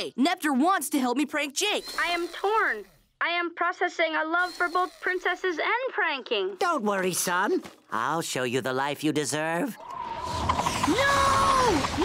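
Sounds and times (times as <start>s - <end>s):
cartoon clicking rattling machinery: 4.4s - 5.3s.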